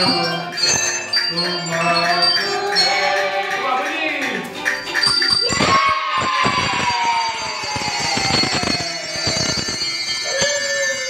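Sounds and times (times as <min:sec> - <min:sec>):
handbells ringing and clinking: 0:00.0 - 0:11.0.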